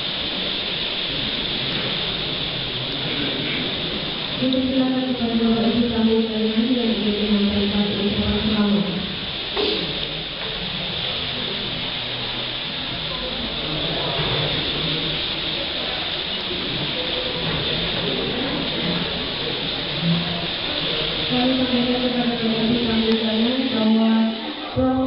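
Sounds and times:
indistinct chatter: 0.0s - 25.0s
steady hiss: 0.0s - 25.0s.

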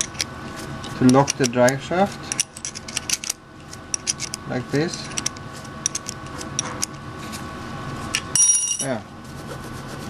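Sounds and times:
faint steady hum: 0.0s - 10.0s
metal tools clinking: 8.3s - 9.0s
ringing metallic clink: 8.4s - 8.9s.

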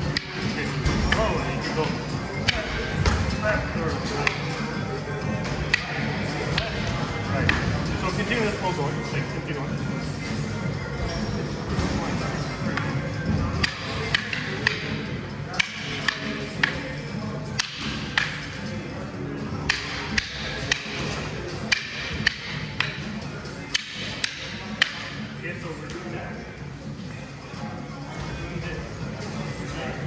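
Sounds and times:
background music: 0.0s - 30.0s
sticks clacking together: 13.6s - 15.0s, 15.6s - 16.8s, 17.5s - 18.5s, 19.6s - 23.1s, 23.7s - 25.2s.

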